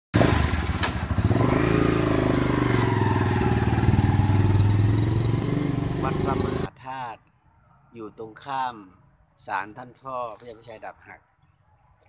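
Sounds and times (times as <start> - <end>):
engine running: 0.2 - 6.7.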